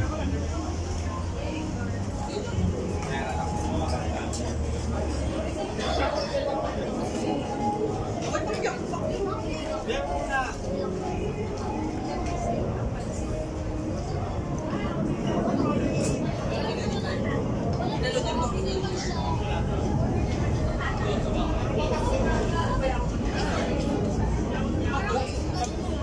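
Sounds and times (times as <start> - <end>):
diners chattering: 0.0 - 26.0.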